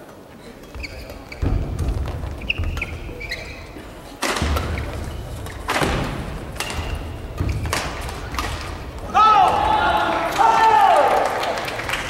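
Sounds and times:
shoes squeaking on court floor: 0.1s - 9.1s.

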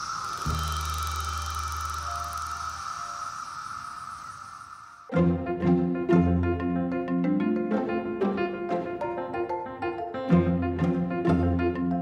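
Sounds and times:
cicadas chorus: 0.0s - 5.1s.

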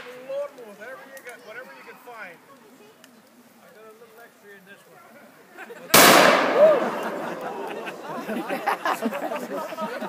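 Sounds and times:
musket shot with echo: 6.0s - 7.4s.

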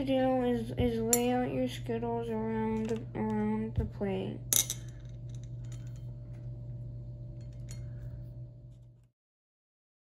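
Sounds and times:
steady low hum: 0.0s - 9.1s.

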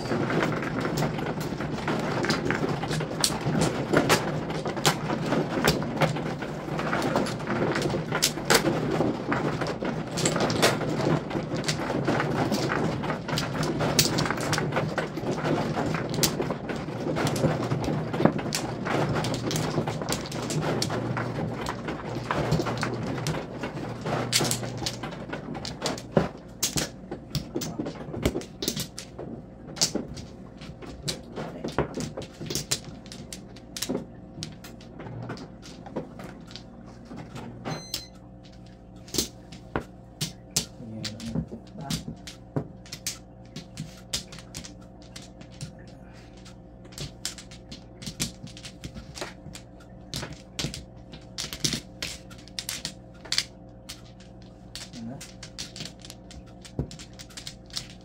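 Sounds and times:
mahjong tiles clacking: 0.0s - 36.7s, 37.8s - 58.0s
low steady hum: 0.0s - 58.0s.

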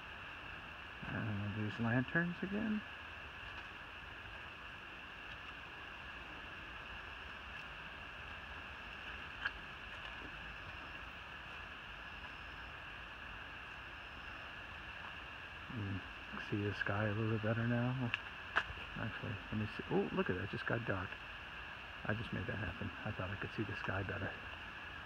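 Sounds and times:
high insect drone: 0.0s - 25.0s.

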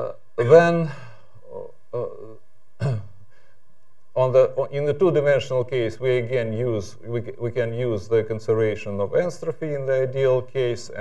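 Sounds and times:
man saying uh: 0.0s - 2.4s
low room background: 0.0s - 11.0s.

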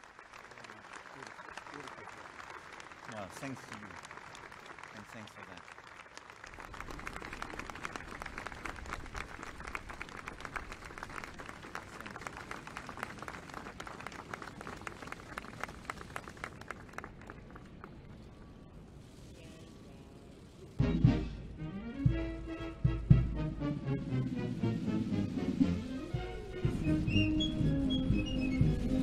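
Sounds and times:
audience applauding: 0.0s - 18.2s.

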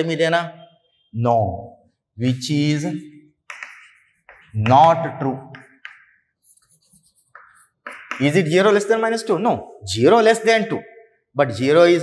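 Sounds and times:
chalk scratching on chalkboard: 2.8s - 8.6s.

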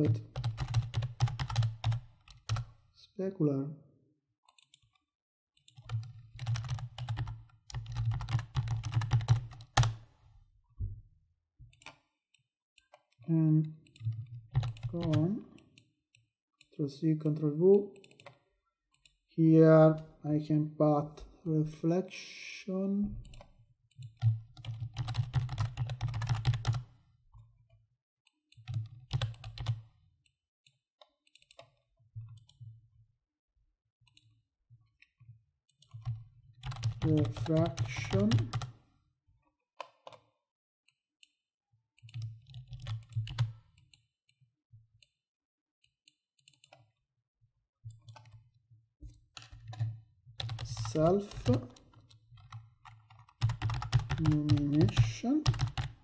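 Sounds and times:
keyboard typing: 0.0s - 2.7s, 5.7s - 10.1s, 13.8s - 15.6s, 17.9s - 18.4s, 23.2s - 26.9s, 28.6s - 29.8s, 35.8s - 38.7s, 42.1s - 43.7s, 48.0s - 48.4s, 49.4s - 56.0s.

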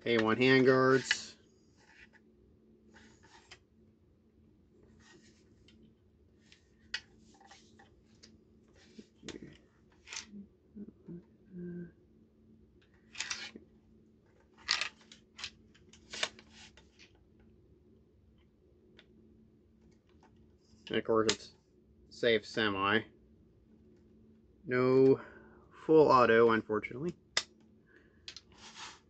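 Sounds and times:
rifle handling scrapes and clicks: 0.9s - 2.2s, 13.1s - 13.6s.

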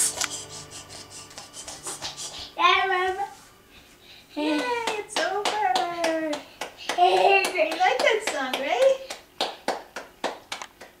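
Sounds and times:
hand claps: 4.5s - 11.0s.

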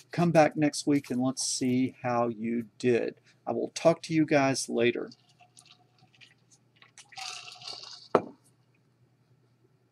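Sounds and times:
man sipping a drink: 5.1s - 8.4s
tumbler set down thud: 8.1s - 8.4s.

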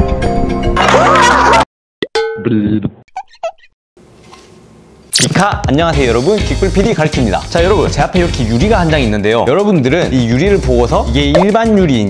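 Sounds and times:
music: 0.0s - 1.6s, 5.3s - 12.0s.

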